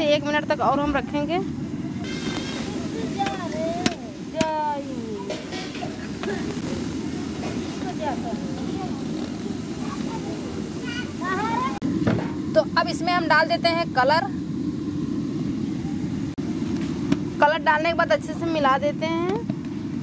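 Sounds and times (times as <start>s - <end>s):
women and children chattering: 0.0s - 11.8s.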